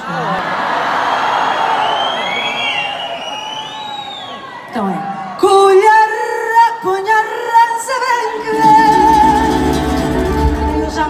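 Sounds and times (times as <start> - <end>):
woman singing with vibrato: 5.4 - 11.0.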